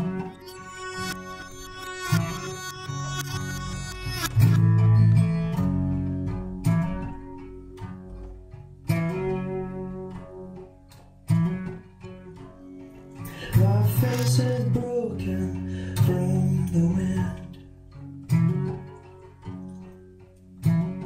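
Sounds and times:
low bass notes: 0.0s - 10.8s
picked guitar chords: 0.0s - 21.0s.

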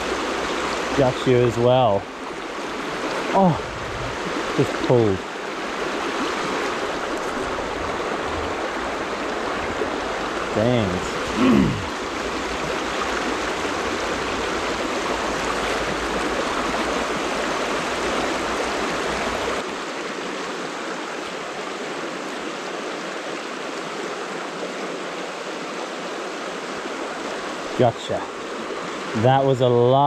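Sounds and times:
stream rushing over stones: 0.0s - 30.0s.

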